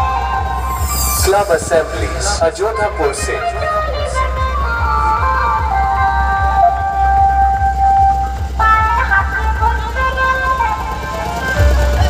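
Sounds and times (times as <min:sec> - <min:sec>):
loud music with heavy bass beat: 0:00.0 - 0:12.0.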